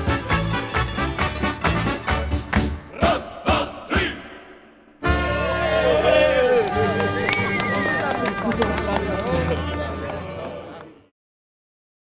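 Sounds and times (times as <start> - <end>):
music: 0.0 - 11.1
people talking and calling out: 2.9 - 11.1.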